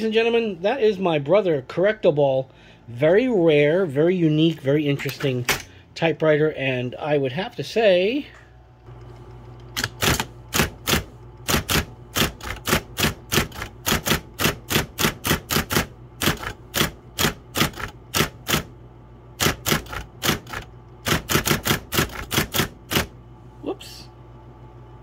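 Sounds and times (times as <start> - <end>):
typewriter motor hum: 8.9 - 23.2
typewriter typing: 9.8 - 18.7, 19.4 - 23.1.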